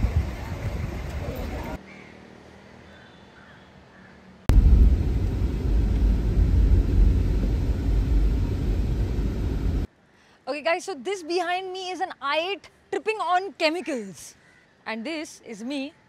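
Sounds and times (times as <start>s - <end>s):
low rumble of traffic: 0.0s - 10.0s
faint steady hum: 4.5s - 10.4s.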